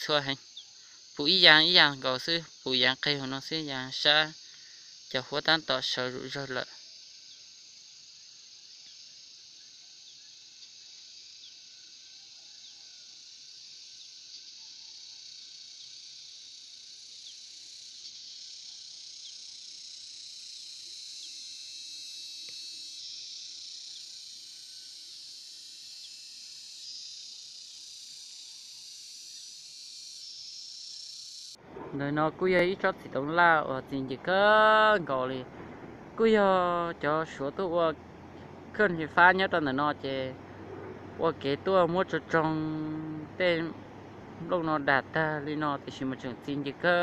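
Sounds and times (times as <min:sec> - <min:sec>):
high-pitched insect chorus: 0:00.0 - 0:47.0.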